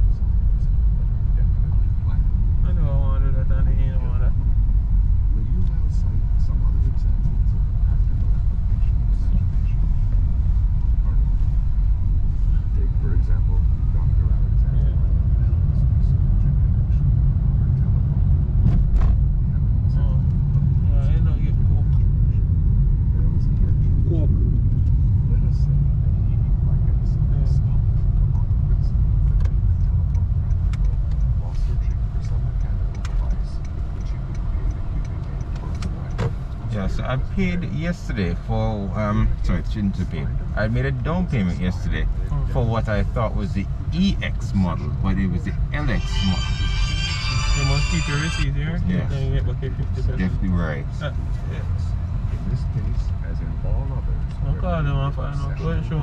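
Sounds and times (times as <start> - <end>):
road and tyre rumble in car: 0.0 - 46.2, 48.4 - 56.0.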